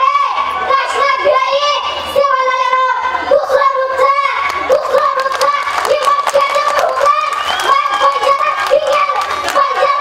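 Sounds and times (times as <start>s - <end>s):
girl chanting in sing-song tones: 0.0s - 10.0s.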